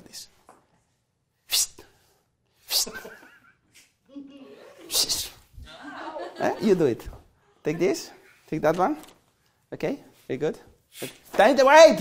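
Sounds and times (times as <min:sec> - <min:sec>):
short sharp sneezes: 0:01.4 - 0:03.1, 0:04.8 - 0:05.5, 0:10.9 - 0:11.3.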